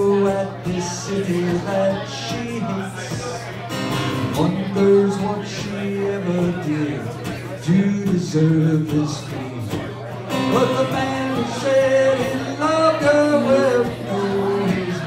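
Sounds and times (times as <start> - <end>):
man singing: 0.0 - 15.0
strummed acoustic guitar: 0.0 - 15.0.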